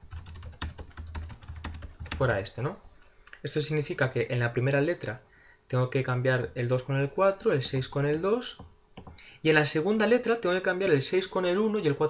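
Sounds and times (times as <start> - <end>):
computer keyboard typing: 0.0 - 2.4.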